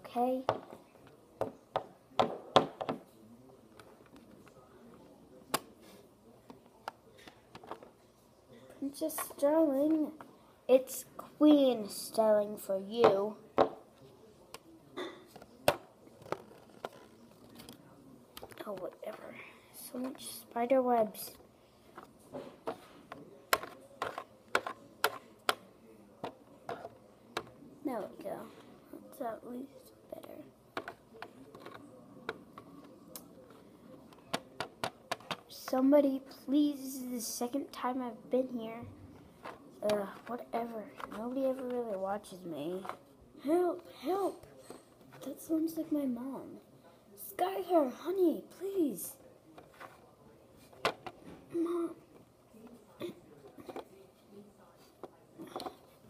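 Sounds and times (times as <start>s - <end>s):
plastic toy tapping on plastic: 22.0s - 25.6s, 30.8s - 32.4s, 34.3s - 35.4s.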